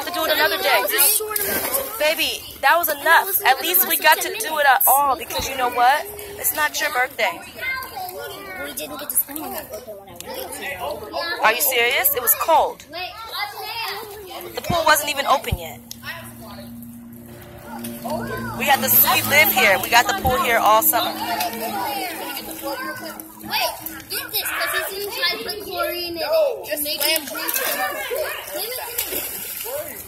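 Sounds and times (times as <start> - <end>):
water splashing: 0.0 - 9.8, 13.6 - 30.0
faint voices: 0.0 - 30.0
steady low hum: 14.5 - 26.5.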